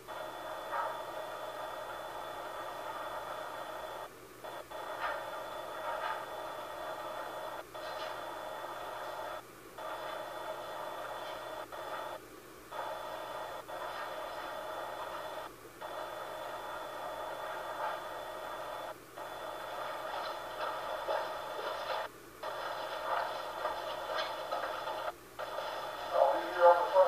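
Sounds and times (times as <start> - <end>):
faint steady tones: 0.0 - 27.0
static hiss: 0.0 - 27.0.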